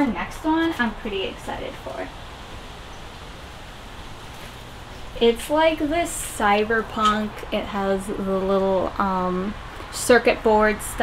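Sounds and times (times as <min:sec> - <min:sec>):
even hiss: 0:00.0 - 0:07.6.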